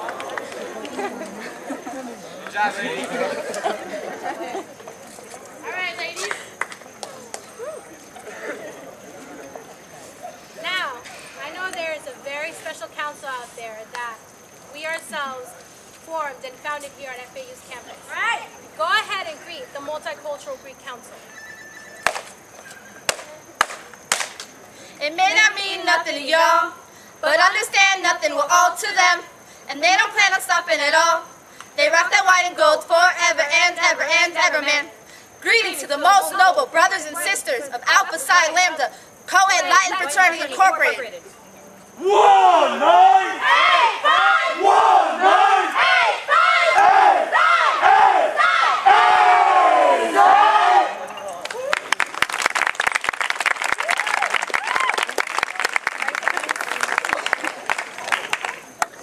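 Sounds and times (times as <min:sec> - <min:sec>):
women chanting in unison: 0:24.9 - 0:41.2, 0:42.9 - 0:51.0.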